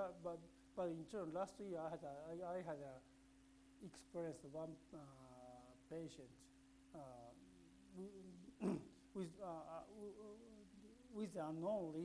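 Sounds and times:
low electrical hum: 0:00.0 - 0:12.0
man saying uh: 0:07.0 - 0:12.0
man coughing: 0:08.6 - 0:09.0.

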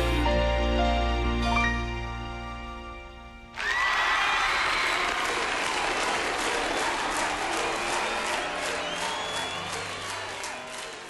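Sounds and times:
audience applauding and cheering: 0:03.6 - 0:11.0
high whistles or shouts: 0:06.6 - 0:11.0.

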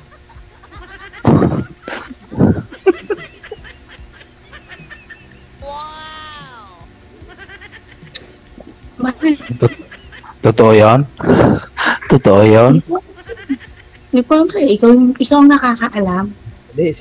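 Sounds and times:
people laughing: 0:00.0 - 0:14.7.

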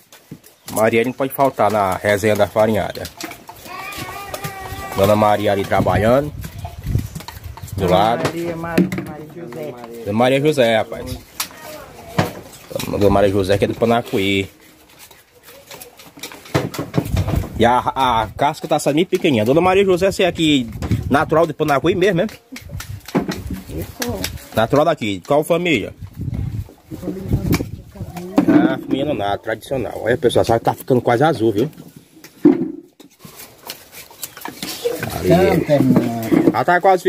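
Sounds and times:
knives clicking and scraping roots: 0:00.0 - 0:08.6, 0:09.4 - 0:28.4, 0:33.0 - 0:36.7.

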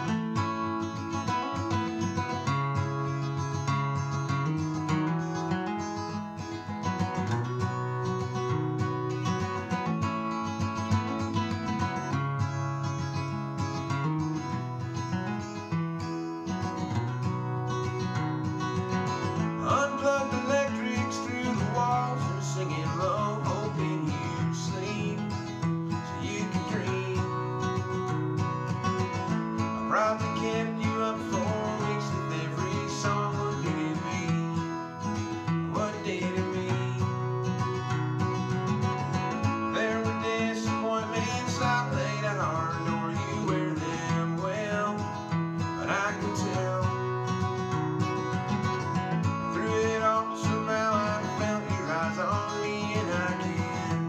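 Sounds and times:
man singing: 0:00.0 - 0:01.7, 0:18.9 - 0:38.0, 0:39.0 - 0:54.0
acoustic guitar strumming chords: 0:00.0 - 0:54.0.

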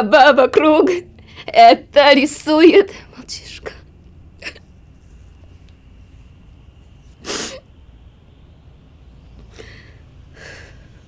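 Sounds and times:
woman sobbing breath: 0:09.6 - 0:11.0.

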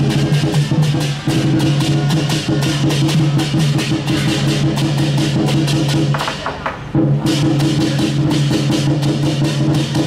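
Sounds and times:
big drum beating: 0:00.0 - 0:10.0
cymbals clashing: 0:00.0 - 0:10.0.

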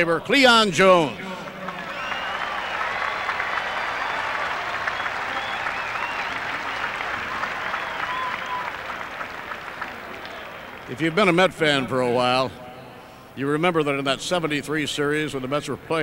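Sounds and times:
crowd applauding and cheering: 0:01.2 - 0:11.0.

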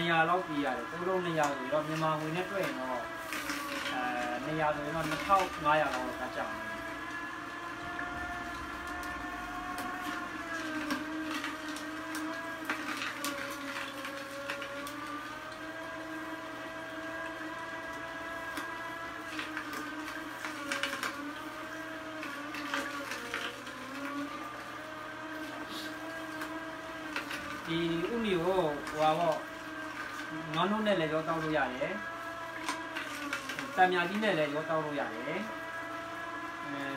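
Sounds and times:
juicer motor whirring: 0:00.0 - 0:36.9.

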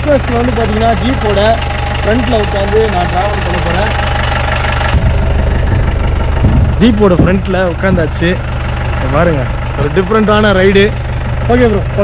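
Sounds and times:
jeep engine idling: 0:00.0 - 0:12.0.

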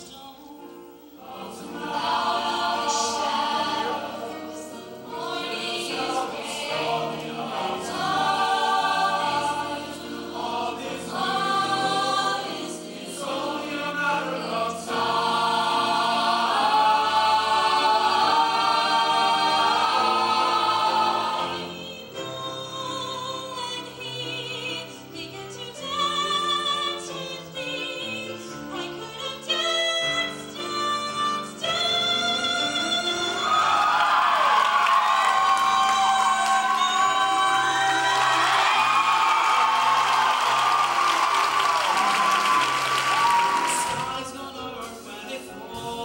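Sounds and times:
choir singing: 0:00.0 - 0:46.0.

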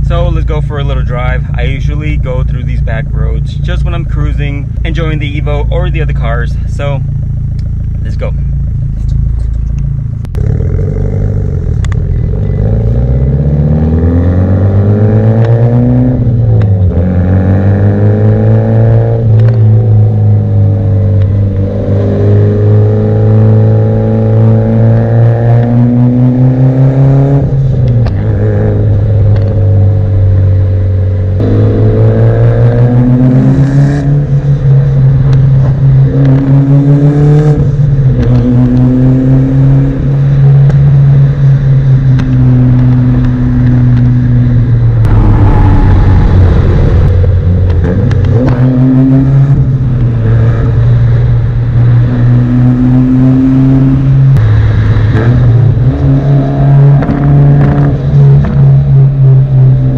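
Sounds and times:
car engine revving from inside cabin: 0:10.3 - 0:29.9, 0:31.4 - 0:41.4, 0:45.0 - 0:50.8, 0:55.1 - 0:59.6.

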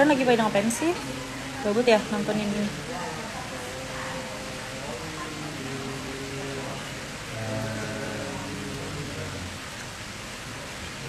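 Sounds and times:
faint low voice: 0:00.0 - 0:09.7
steady hiss: 0:00.0 - 0:11.0.

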